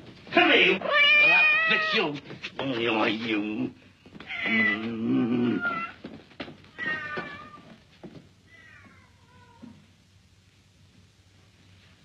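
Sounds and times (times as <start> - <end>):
cat meowing: 0.7 - 2.2, 4.2 - 6.0, 6.7 - 7.8.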